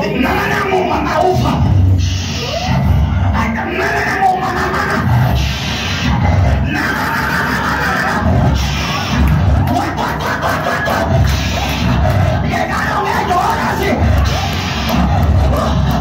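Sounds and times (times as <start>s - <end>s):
man praying through distorted microphone: 0.0s - 16.0s
people calling out: 6.5s - 16.0s.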